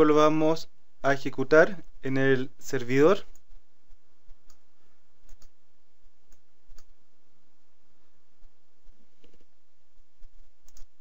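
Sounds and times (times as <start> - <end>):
faint background hum: 0.0 - 11.0
computer mouse clicking: 3.3 - 4.6, 5.2 - 5.6, 6.3 - 7.0, 10.2 - 11.0.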